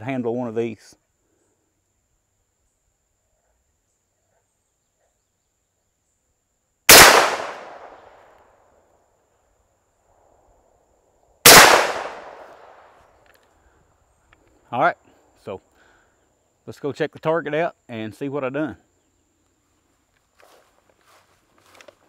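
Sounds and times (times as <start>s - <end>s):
shotgun shots: 6.9s - 8.1s, 11.5s - 12.8s.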